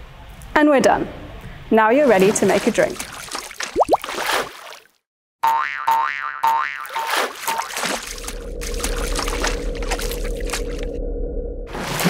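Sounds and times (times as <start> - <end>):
sharp splashy clicks: 2.3 - 4.9, 6.5 - 10.8
deep hum: 8.0 - 12.0
steady low drone: 8.1 - 12.0.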